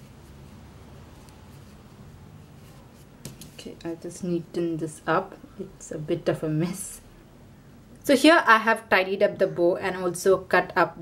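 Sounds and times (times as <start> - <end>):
soft handling noise: 0.0 - 4.1
woman speaking: 3.6 - 7.1, 8.0 - 11.0.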